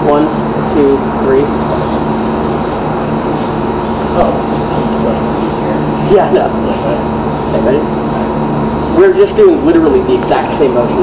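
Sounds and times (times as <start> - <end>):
motor hum: 0.0 - 11.0.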